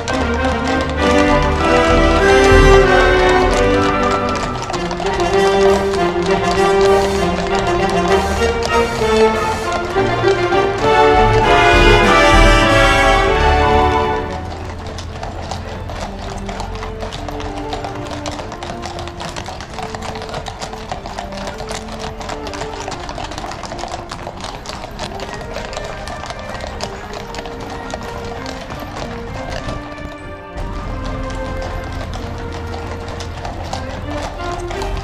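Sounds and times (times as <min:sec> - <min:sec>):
hooves clip-clopping on brick: 0:00.0 - 0:35.0
music in held notes: 0:00.0 - 0:35.0.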